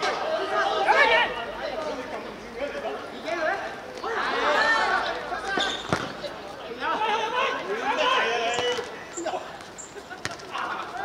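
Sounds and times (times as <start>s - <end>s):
players calling out: 0.0s - 11.0s.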